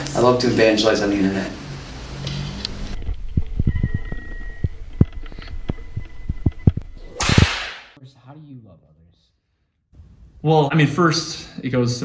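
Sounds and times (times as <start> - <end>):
whip-crack swoosh effect: 7.2 - 8.0.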